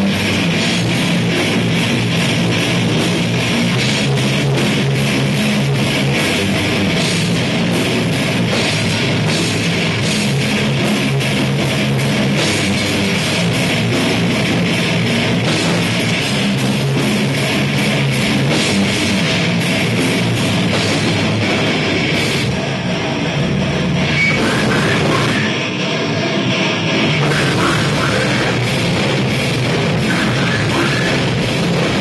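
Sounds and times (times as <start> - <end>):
distorted electric guitars: 0.0 - 32.0
drum kit hammering fast: 0.0 - 32.0.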